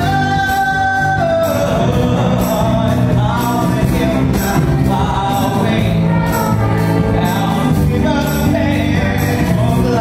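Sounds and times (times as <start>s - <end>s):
man singing show tune: 0.0s - 10.0s
musical accompaniment: 0.0s - 10.0s.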